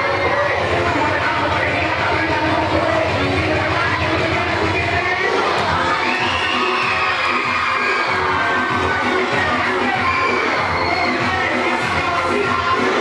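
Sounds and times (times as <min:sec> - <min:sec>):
dance music with steady beat: 0:00.0 - 0:13.0
children screaming and cheering: 0:05.3 - 0:13.0.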